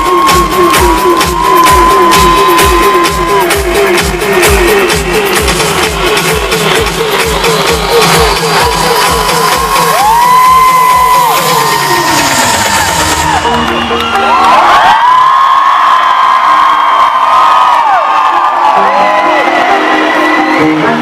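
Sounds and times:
kick drum: 0:00.0 - 0:11.3
crowd cheering and whooping: 0:00.0 - 0:21.0
electronic dance music: 0:00.0 - 0:21.0.

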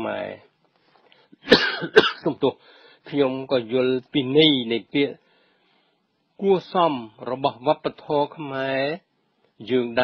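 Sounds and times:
person coughing: 0:01.5 - 0:02.4.

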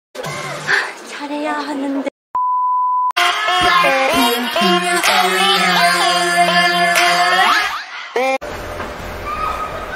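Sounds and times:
test tone beep: 0:02.4 - 0:03.1
pop song with woman singing: 0:03.2 - 0:08.4.

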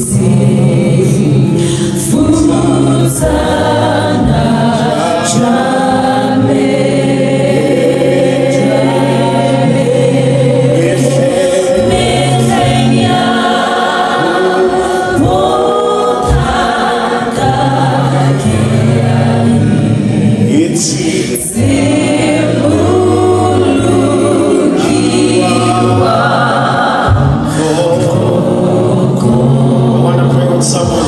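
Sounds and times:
group singing gospel song: 0:00.0 - 0:31.0
low steady accompaniment: 0:00.0 - 0:31.0.

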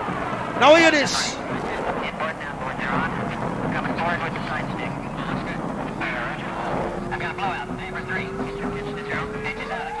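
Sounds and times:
people shouting: 0:00.6 - 0:01.5.

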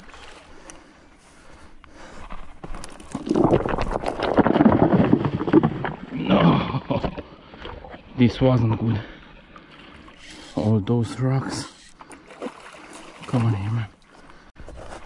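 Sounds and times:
rocks clattering underfoot: 0:02.2 - 0:08.0.

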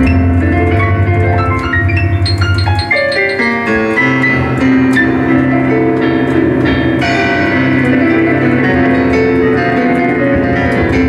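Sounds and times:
digital piano playing chords: 0:00.0 - 0:11.0.

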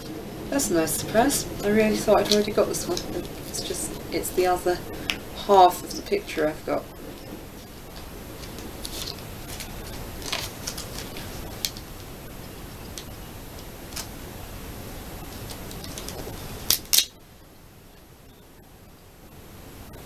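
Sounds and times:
background hiss: 0:00.0 - 0:20.0
paper crinkling and clicking: 0:07.2 - 0:11.9, 0:15.3 - 0:17.1.

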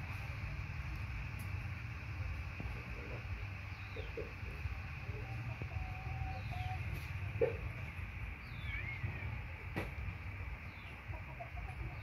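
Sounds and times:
steady low rumble: 0:00.0 - 0:12.0
faint bird calls: 0:03.0 - 0:09.5.

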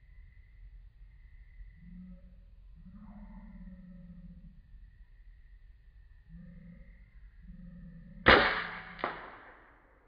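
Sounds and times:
air rifle shot: 0:08.3 - 0:09.8
smaller sharp crack: 0:08.3 - 0:09.8.

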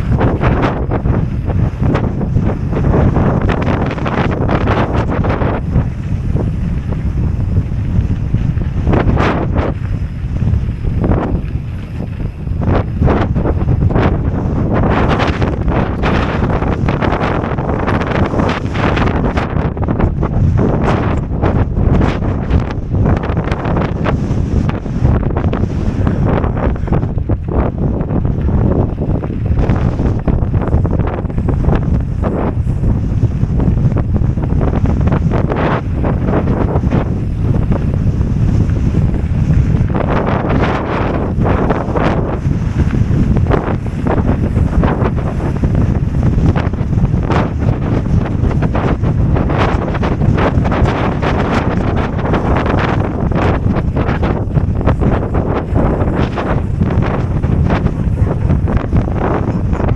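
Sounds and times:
bike tyres rattling over stones: 0:00.0 - 0:59.9
wind buffeting microphone: 0:00.0 - 0:59.9.

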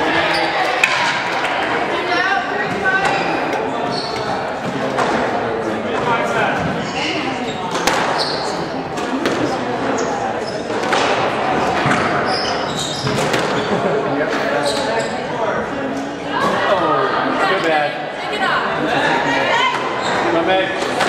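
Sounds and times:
people talking: 0:00.0 - 0:21.0
squash ball hits: 0:00.7 - 0:01.5, 0:07.7 - 0:08.2, 0:10.7 - 0:12.2, 0:13.0 - 0:13.7.

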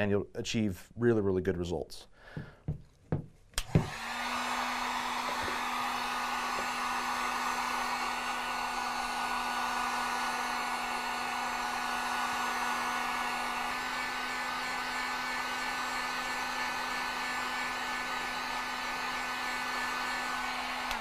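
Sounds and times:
heat gun blowing hiss: 0:03.6 - 0:21.0
heat gun motor hum: 0:03.6 - 0:21.0.

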